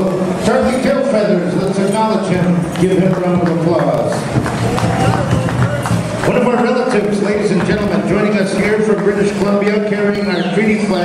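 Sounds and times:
voices in echoing hall: 0.0s - 11.0s.

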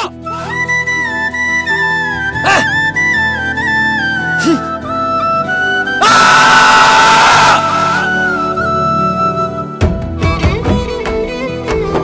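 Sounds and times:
background music with flute: 0.0s - 12.0s.

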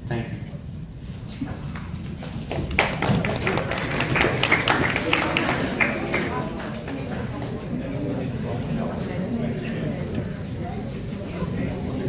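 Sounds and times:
people clapping: 1.6s - 7.9s.

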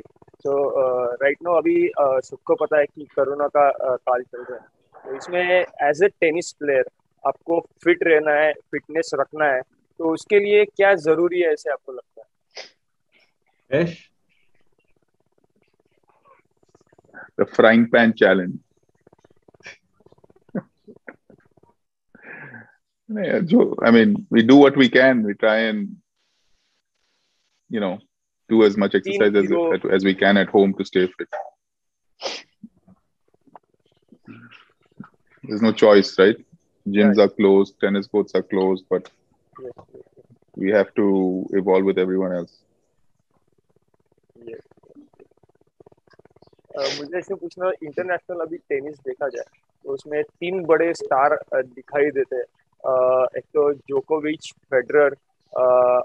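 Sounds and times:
man's voice murmuring: 0.0s - 11.9s, 13.7s - 14.0s, 17.2s - 18.6s, 22.2s - 26.0s, 27.7s - 31.4s, 35.5s - 40.0s, 40.6s - 42.4s, 46.8s - 56.0s.

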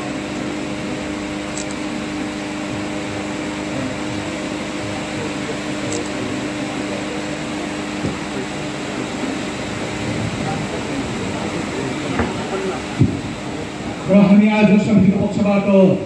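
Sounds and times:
background hum and hiss: 0.0s - 16.0s.

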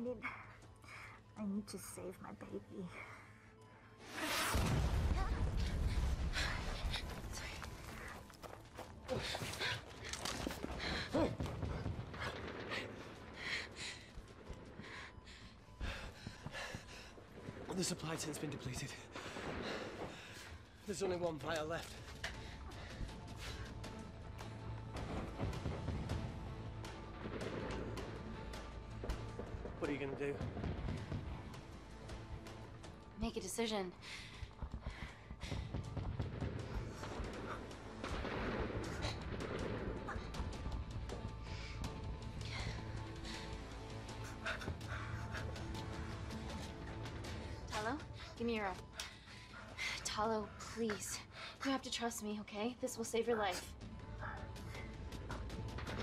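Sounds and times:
dense crackling rumble: 4.6s - 8.7s, 9.6s - 23.6s, 24.2s - 33.6s, 34.4s - 43.4s.

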